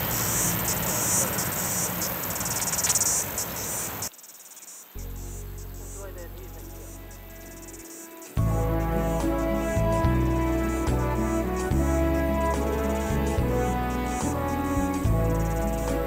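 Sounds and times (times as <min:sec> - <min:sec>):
insects chirping: 0:00.0 - 0:16.0
instrumental music: 0:05.0 - 0:16.0.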